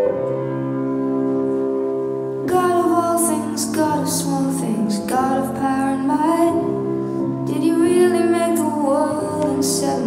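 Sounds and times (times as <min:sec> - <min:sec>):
sustained piano chords: 0:00.0 - 0:10.0
woman singing: 0:02.5 - 0:06.8, 0:07.4 - 0:10.0.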